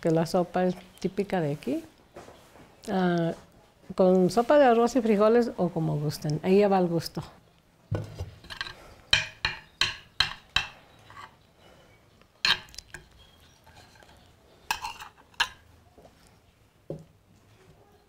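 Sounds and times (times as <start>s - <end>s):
metal spoon clinking on clay dish: 8.4s - 11.3s, 12.4s - 15.6s.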